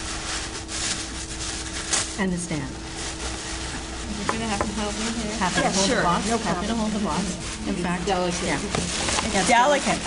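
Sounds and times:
tissue paper crinkling: 0.0s - 10.0s.

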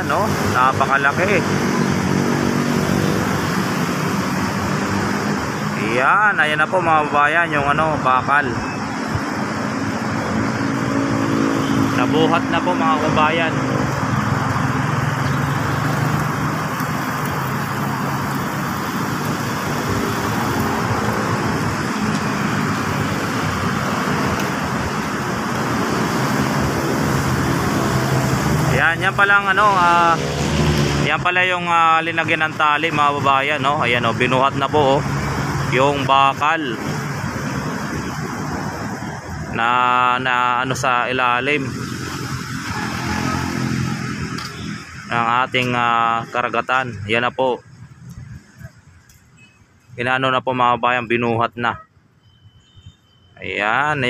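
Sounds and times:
broad rushing noise: 0.0s - 51.8s
outdoor background noise: 0.0s - 54.0s
engine hum: 8.9s - 31.2s.

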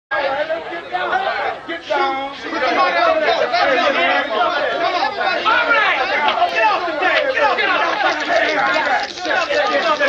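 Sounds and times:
men talking over one another: 0.1s - 10.0s.

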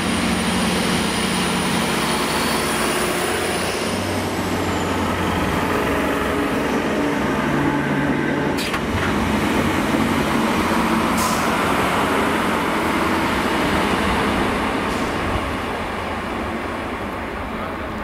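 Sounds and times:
train running past: 0.0s - 18.0s.

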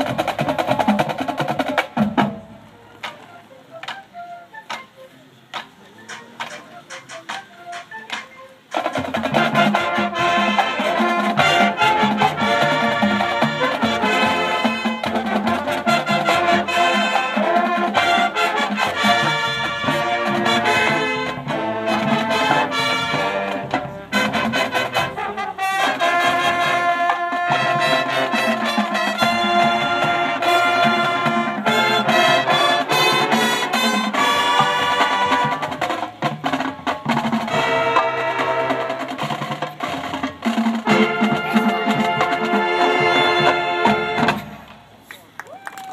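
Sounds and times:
drums and percussion: 0.0s - 45.9s
brass section: 6.1s - 44.7s.

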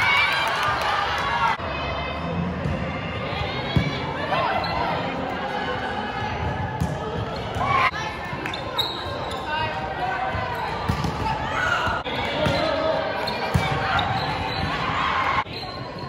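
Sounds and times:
players and spectators shouting: 0.0s - 16.0s
volleyball hits: 10.2s - 14.9s.

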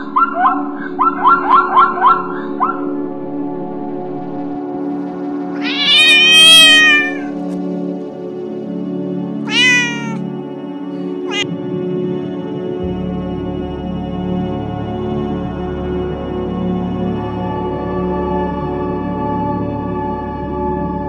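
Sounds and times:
background music: 0.0s - 21.0s
cat meowing: 5.6s - 7.4s, 9.5s - 10.2s, 11.3s - 11.5s.

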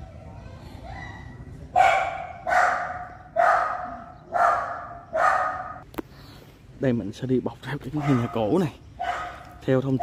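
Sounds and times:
dog barking: 1.0s - 5.8s, 7.9s - 9.6s.

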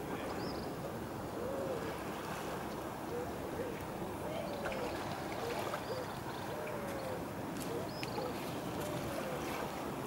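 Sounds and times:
gentle water washing: 0.0s - 10.0s
wind: 0.0s - 10.0s.

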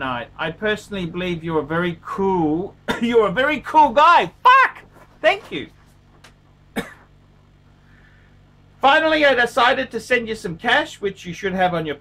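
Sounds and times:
faint low hum: 0.0s - 12.0s
man coughing: 2.8s - 3.2s, 6.7s - 7.2s.

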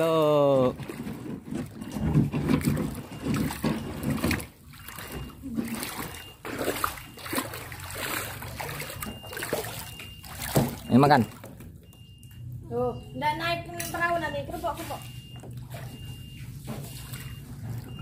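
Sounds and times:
person calling out: 0.0s - 0.7s
water splashing around kayak: 0.0s - 12.4s, 14.6s - 18.0s.

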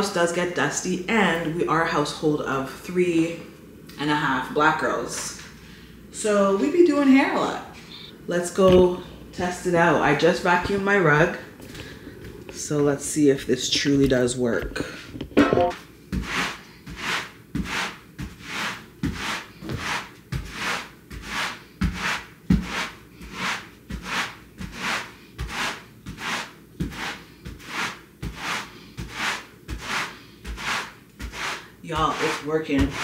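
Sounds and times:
rubber broom scrubbing rug: 16.1s - 33.0s.

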